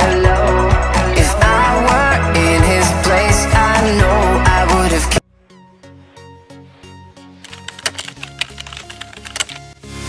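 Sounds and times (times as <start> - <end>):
background music: 0.0 - 10.0
keyboard typing clicks: 7.4 - 9.8.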